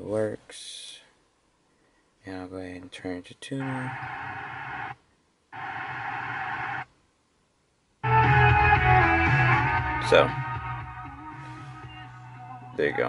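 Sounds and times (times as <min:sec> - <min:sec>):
radio station audio: 0:03.5 - 0:05.0, 0:05.6 - 0:06.9, 0:12.7 - 0:13.0
music on car radio: 0:03.6 - 0:05.0, 0:05.6 - 0:06.9, 0:08.0 - 0:13.0.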